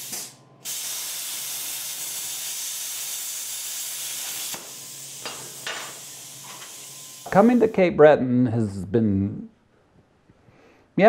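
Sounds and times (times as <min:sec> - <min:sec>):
gas jet hissing: 0:00.0 - 0:07.8.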